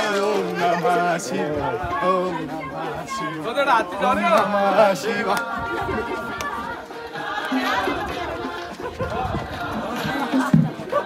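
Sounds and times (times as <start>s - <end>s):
people talking at once: 0.0s - 11.0s.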